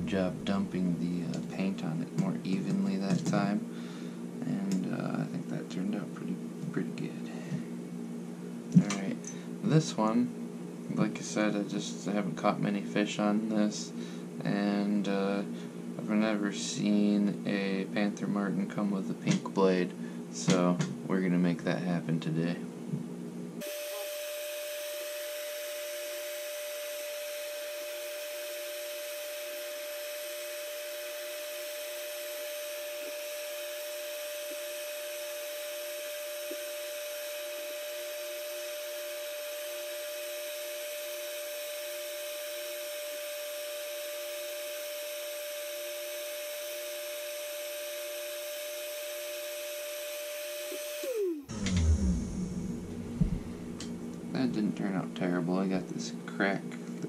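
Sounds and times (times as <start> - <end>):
heat gun fan whine: 0.0 - 57.0.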